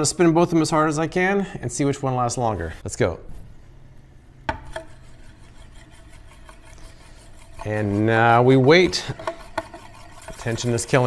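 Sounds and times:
metal disk whirring on glass: 4.6s - 11.0s.

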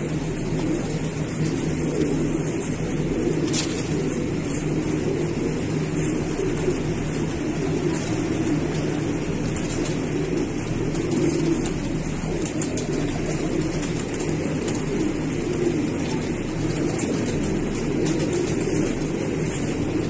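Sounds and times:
pigeons cooing: 0.0s - 20.0s.

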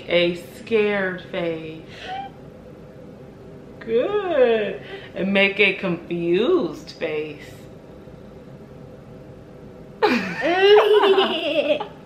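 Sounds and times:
woman and boy laughing: 10.0s - 12.0s.

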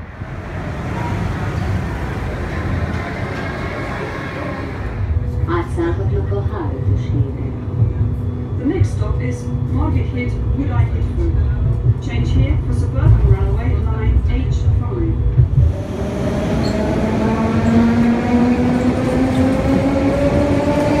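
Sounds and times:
metro train motors whining: 0.0s - 21.0s
tram rumbling: 0.0s - 21.0s
people talking: 2.9s - 7.7s, 8.6s - 15.2s.

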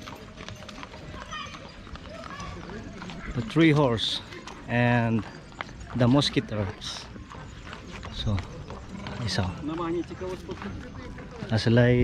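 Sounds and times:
horse hooves clip-clopping on paving: 0.0s - 12.0s.

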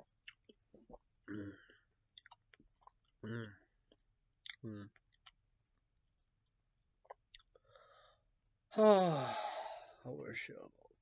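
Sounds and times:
man chewing: 2.1s - 7.6s.

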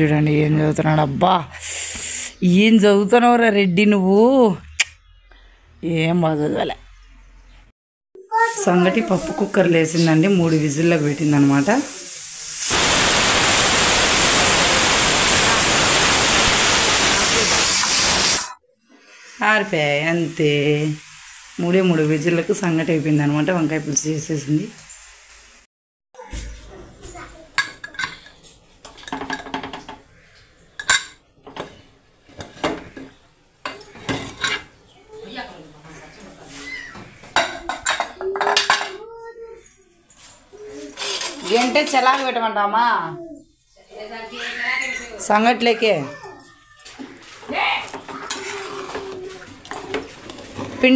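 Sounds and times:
pressure cooker steam hiss: 9.2s - 24.0s, 24.7s - 25.6s
pressure cooker high whistle: 12.5s - 18.6s.

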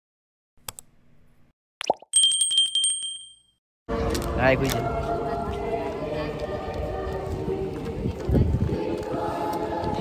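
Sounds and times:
click: 0.6s - 0.9s
small bell trilling: 2.1s - 3.6s.

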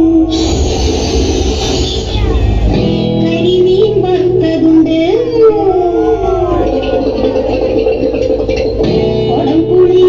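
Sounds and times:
dance music: 0.0s - 10.0s
howl-like gliding voice: 5.2s - 7.8s.

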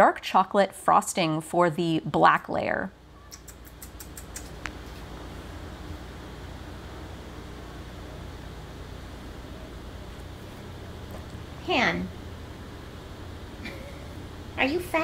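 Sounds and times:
low room hum: 0.0s - 15.0s
faint clicks: 3.3s - 4.8s.

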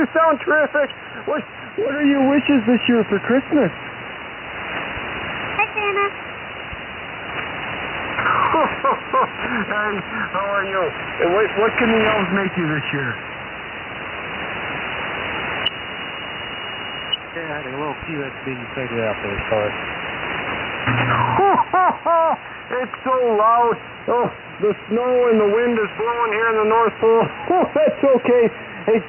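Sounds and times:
radio static hiss: 0.0s - 29.0s
voice over radio: 22.7s - 27.4s.

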